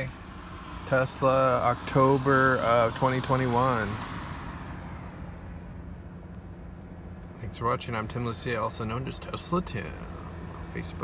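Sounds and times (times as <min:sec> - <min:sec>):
road and tyre noise in car: 0:00.0 - 0:11.0.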